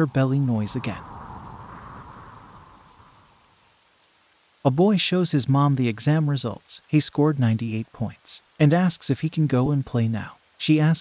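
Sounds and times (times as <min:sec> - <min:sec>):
soft rushing noise: 0:00.0 - 0:04.3.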